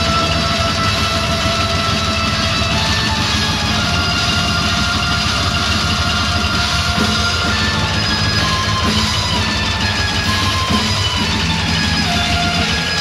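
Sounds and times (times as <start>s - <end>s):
heavy metal band playing: 0.0s - 13.0s.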